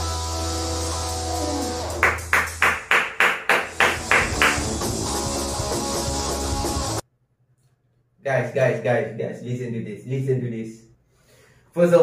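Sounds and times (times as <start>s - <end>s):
hard drum hits: 2.0s - 4.8s
rock band playing: 3.6s - 7.0s.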